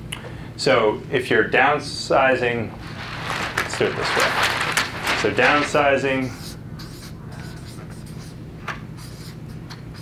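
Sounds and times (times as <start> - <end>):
marker pen writing on paper: 6.3 - 10.0.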